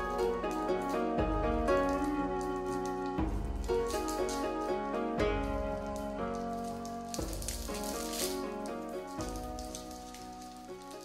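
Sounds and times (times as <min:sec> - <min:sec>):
plastic wrapper crinkling: 0:00.0 - 0:04.8, 0:05.5 - 0:11.0
background music with held notes: 0:00.0 - 0:11.0.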